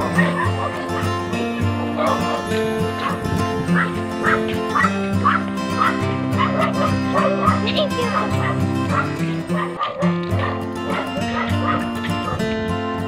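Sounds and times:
background music sustained notes: 0.0 - 13.0.

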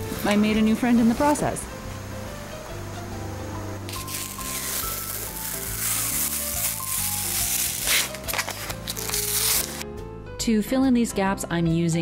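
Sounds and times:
sanding sponge rasping on foam: 4.1 - 8.2.

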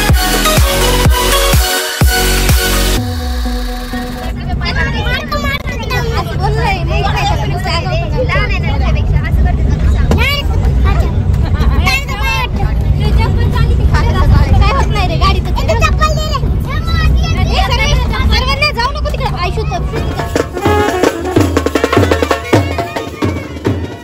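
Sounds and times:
road noise: 0.0 - 24.0
bus engine rumble: 2.2 - 22.0
voices talking and calling out: 3.8 - 24.0.

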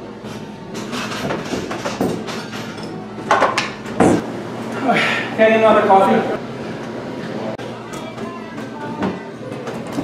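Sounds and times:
coffee shop room noise: 0.0 - 10.0.

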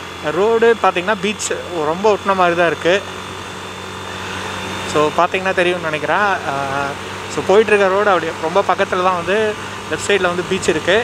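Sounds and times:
motorcycle engine cruising: 0.0 - 11.0
wind and road noise: 0.0 - 11.0.

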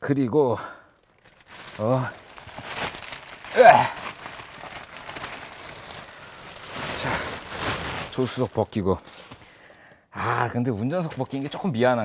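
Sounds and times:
plastic cover crinkling: 0.9 - 10.0, 10.8 - 12.0.

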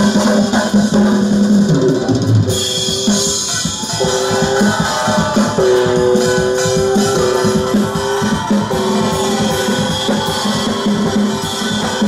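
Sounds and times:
drum kit: 0.0 - 12.0.

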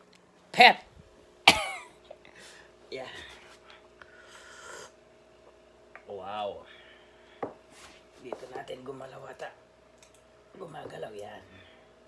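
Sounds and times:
man coughing: 1.5 - 2.0.

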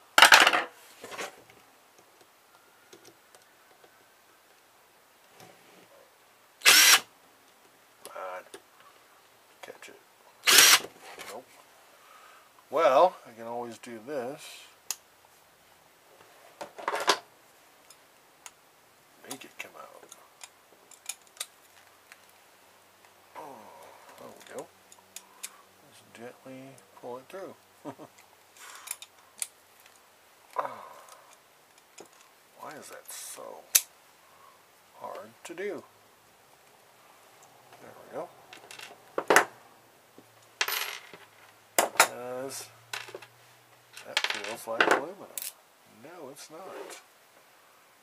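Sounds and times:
metal parts clinking on wood: 38.5 - 39.4, 44.0 - 45.6.

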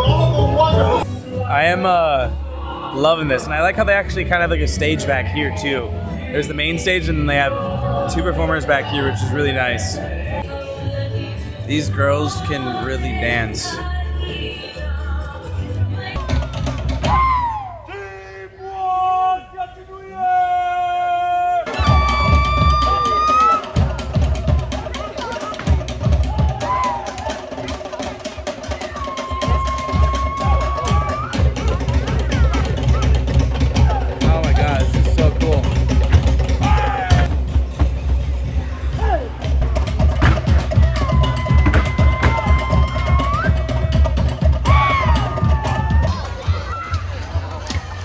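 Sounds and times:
fast driving drumming: 21.7 - 48.0.

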